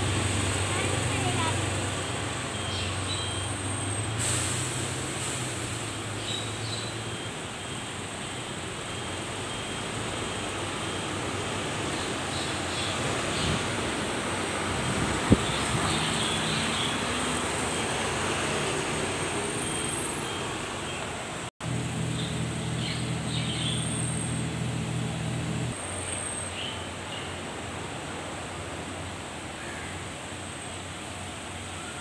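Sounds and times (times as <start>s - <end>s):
bus driving past: 0.0s - 32.0s
buses running: 0.0s - 32.0s.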